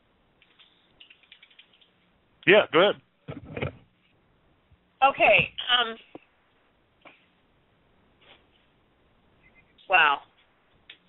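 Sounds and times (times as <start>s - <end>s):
faint phone line clicks and crackle: 0.4s - 2.1s.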